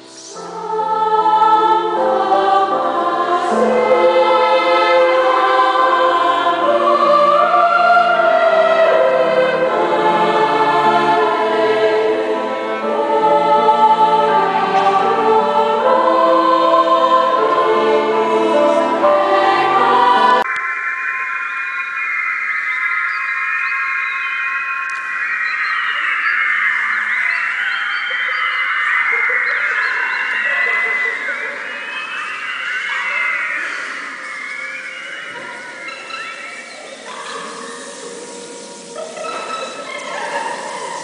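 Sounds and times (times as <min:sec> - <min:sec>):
youth choir singing in harmony: 0:00.0 - 0:20.5, 0:26.9 - 0:41.0.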